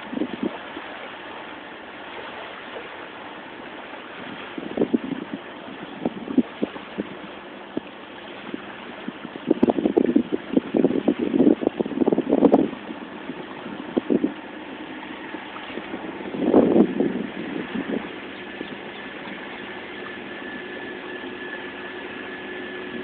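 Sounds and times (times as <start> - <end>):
wind buffeting microphone: 0.0 - 1.0, 4.1 - 23.0
steady hum with high tone: 0.0 - 23.0.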